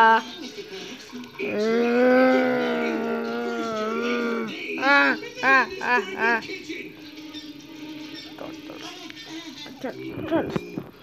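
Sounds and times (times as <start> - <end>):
person holding a long vocal note: 1.4 - 6.4.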